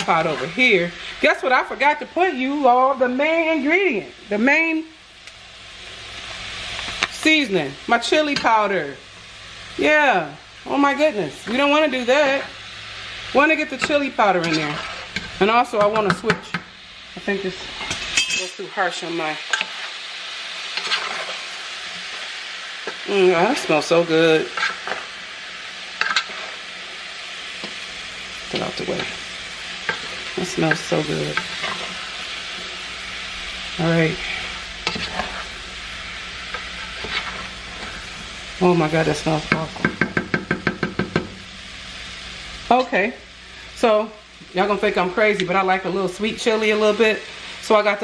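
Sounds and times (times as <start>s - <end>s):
vegetables sizzling in a pot: 0.0s - 48.0s
wooden spoon stirring: 20.8s - 21.4s, 29.9s - 32.0s, 34.2s - 35.6s, 36.5s - 38.0s
spoon knocking against pot: 39.8s - 41.4s.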